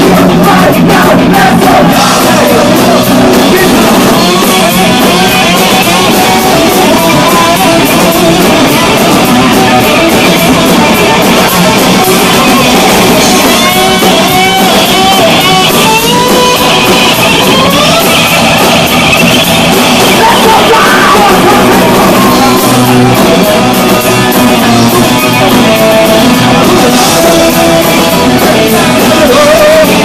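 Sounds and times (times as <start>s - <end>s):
fast melodic guitar lead: 0.0s - 30.0s
punk band playing live: 0.0s - 30.0s.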